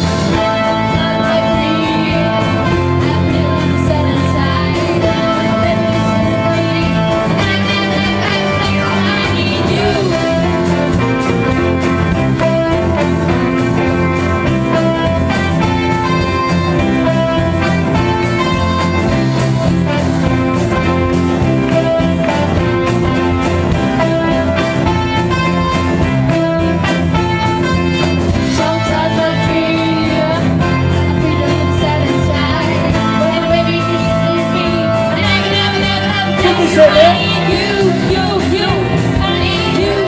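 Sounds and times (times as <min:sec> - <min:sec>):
drum kit: 0:00.0 - 0:40.0
electric guitar: 0:00.0 - 0:40.0
live band playing: 0:00.0 - 0:40.0.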